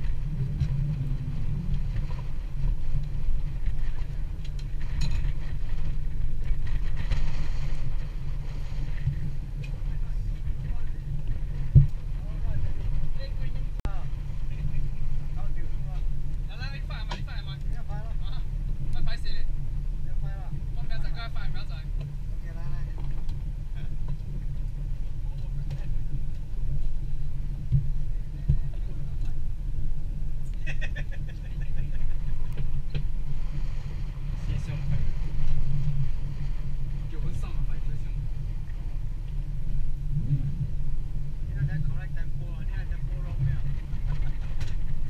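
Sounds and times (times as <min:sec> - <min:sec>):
water around a boat: 0:00.0 - 0:45.0
wind: 0:00.0 - 0:45.0.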